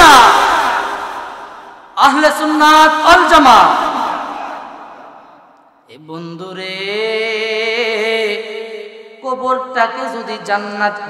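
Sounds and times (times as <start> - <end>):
man's sung call over loudspeaker: 5.9 - 11.0.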